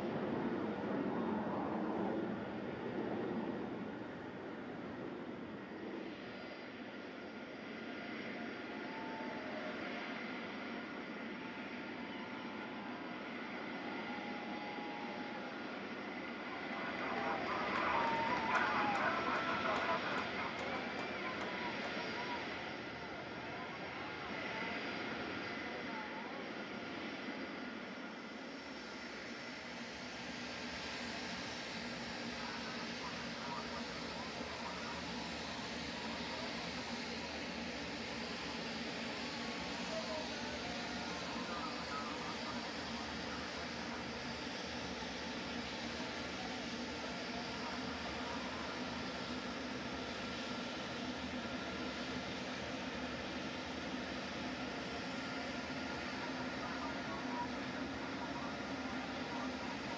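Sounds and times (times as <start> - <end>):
jet engines whining: 0.0 - 59.9
onlookers' voices: 7.3 - 59.9.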